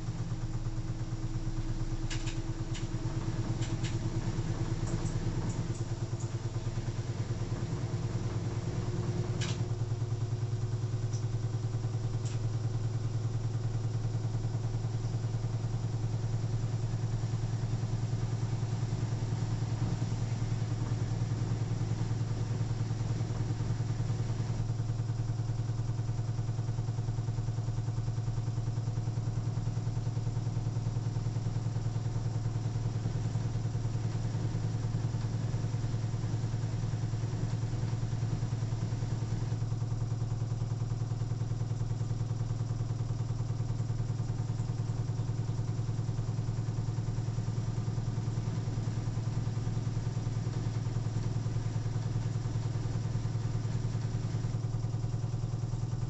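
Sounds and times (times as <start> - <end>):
washing machine spinning: 0.0 - 56.0.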